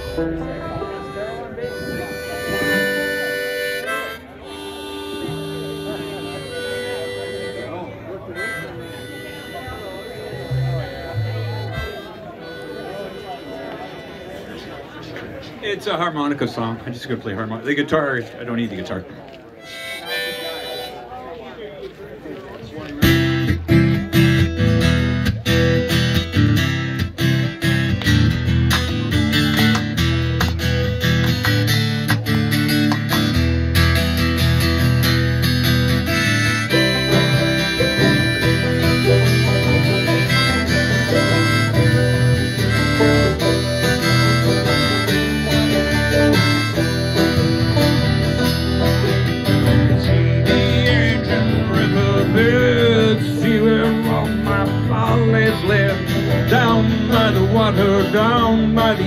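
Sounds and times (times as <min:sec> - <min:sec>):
strummed acoustic guitar: 0:00.0 - 0:13.6, 0:23.0 - 0:59.0
sustained harmonica notes: 0:00.0 - 0:14.8, 0:19.6 - 0:21.4, 0:23.0 - 0:55.2
mandolin: 0:00.0 - 0:15.6, 0:22.8 - 0:59.0.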